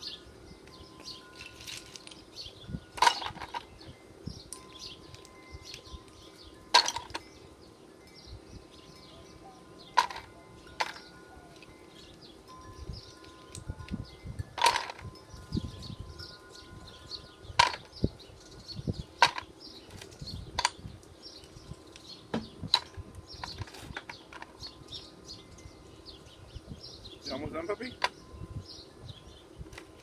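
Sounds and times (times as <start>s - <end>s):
birds chirping faintly: 0.0s - 30.0s.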